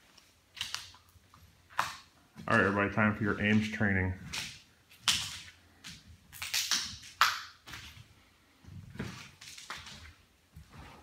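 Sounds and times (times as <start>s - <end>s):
scuffing and rustling: 7.6s - 11.0s.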